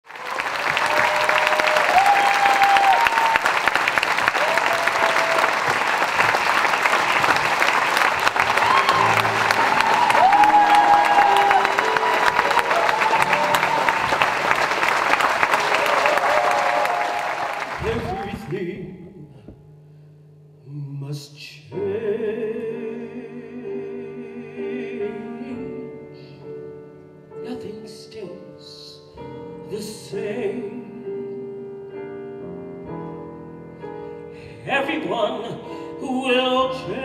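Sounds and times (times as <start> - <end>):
audience applauding: 0.0 - 18.6
people cheering: 0.1 - 18.5.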